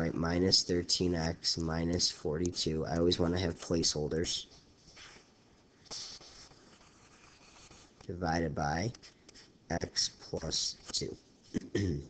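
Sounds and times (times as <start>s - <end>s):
stylus scratching on tablet screen: 2.6s - 11.2s.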